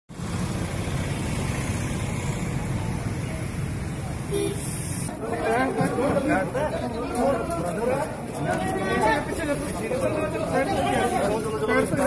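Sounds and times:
road traffic rumble: 0.1s - 12.0s.

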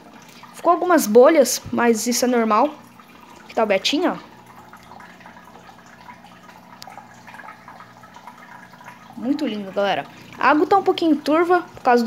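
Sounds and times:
filter humming: 0.0s - 12.0s
water trickling and dripping: 0.0s - 12.0s.

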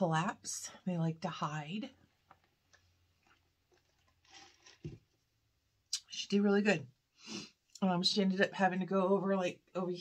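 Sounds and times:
sipping through a straw: 3.2s - 5.0s
soft breathy hiss: 7.1s - 7.7s.

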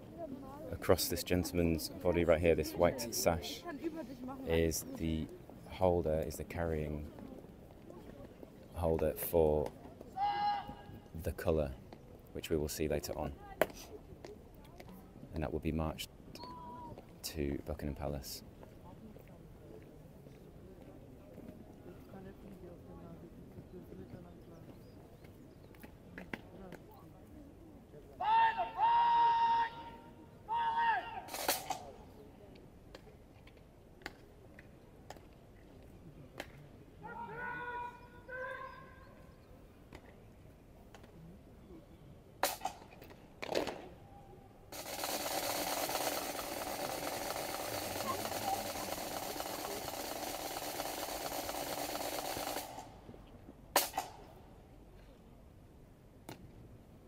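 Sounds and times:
person shouting commands: 10.2s - 10.9s, 28.2s - 31.3s, 37.0s - 39.0s.

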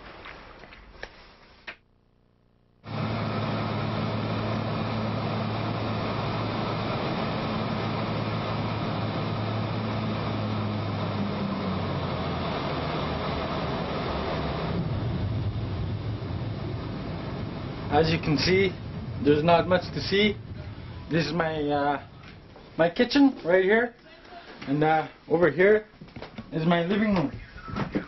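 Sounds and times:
low engine drone: 2.3s - 23.6s
loud rush of air: 2.8s - 23.7s.

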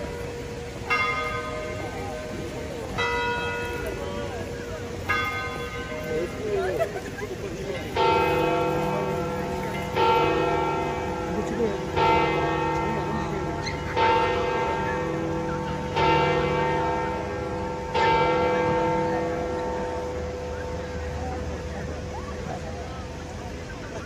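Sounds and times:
large church bell tolling: 0.0s - 23.9s.

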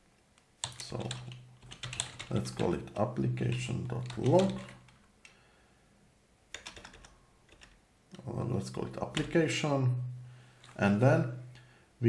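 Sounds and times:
computer keyboard keystrokes: 0.6s - 5.4s, 6.5s - 7.8s, 9.1s - 9.4s.

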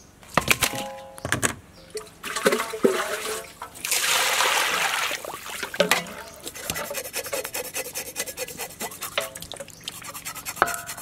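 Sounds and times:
water poured into metal bowl: 2.0s - 6.4s
hands rinsing fish in water: 2.0s - 7.4s, 8.1s - 11.0s
splashes and scrapes against bowl: 2.0s - 11.0s.

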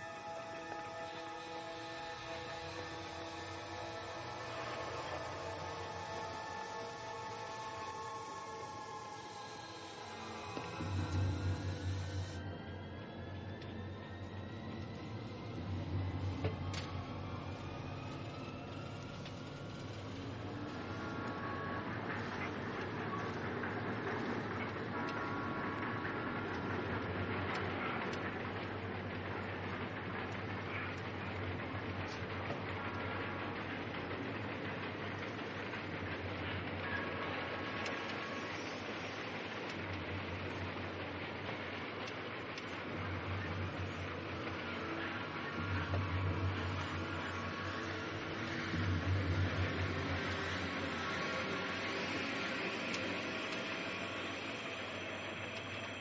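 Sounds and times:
faint thin whine: 0.0s - 56.0s
train rumbling and rattling: 0.0s - 56.0s
deep hum: 0.8s - 34.5s, 42.6s - 54.8s.

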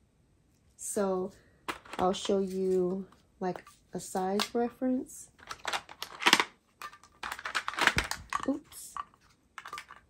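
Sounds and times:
loose drills rattling inside: 5.4s - 8.5s
plastic containers clicking: 5.4s - 10.0s.

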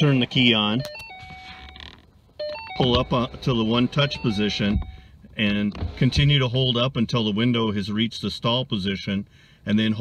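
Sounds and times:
car electronic chime: 0.0s - 1.8s, 2.4s - 5.1s.

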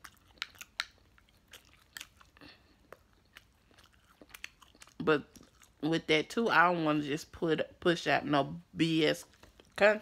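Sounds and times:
chewing food: 0.0s - 6.3s, 9.2s - 9.9s.

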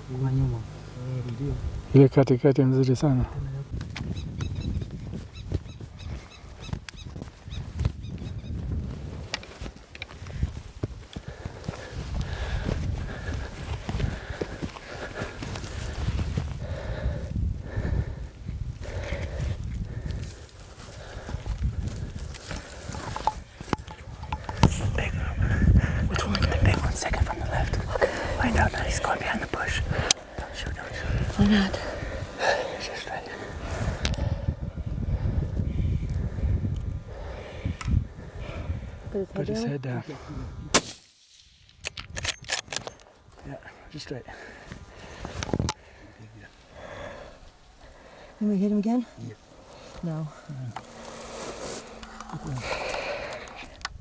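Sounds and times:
wind gusting on microphone: 3.0s - 41.0s, 41.7s - 54.0s
rustling and scuffing in dry grass: 3.8s - 16.6s
rifle shot: 40.7s - 42.0s.

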